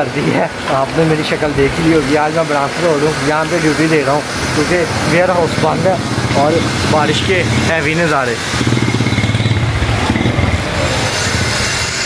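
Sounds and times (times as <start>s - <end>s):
street noise: 0.0s - 12.0s
motorcycle engine running: 2.0s - 12.0s.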